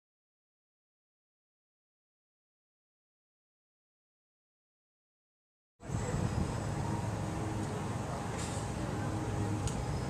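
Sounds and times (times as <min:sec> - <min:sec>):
low outdoor rumble: 0:05.8 - 0:10.0.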